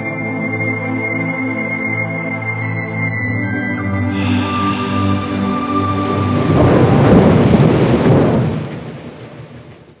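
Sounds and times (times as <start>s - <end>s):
held musical chord: 3.4s - 7.3s
noisy rumbling sound effect: 4.1s - 8.2s.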